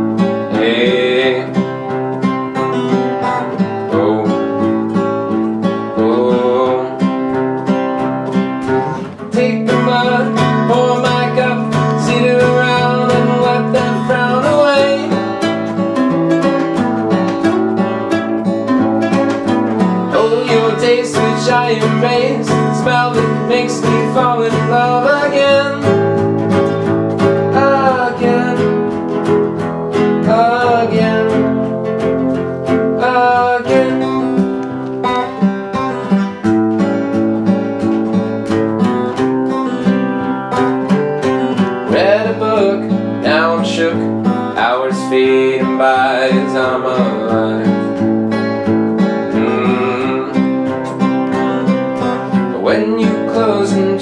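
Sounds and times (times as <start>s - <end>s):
nylon-string classical guitar: 0.0s - 54.0s
steel-string acoustic guitar: 0.0s - 54.0s.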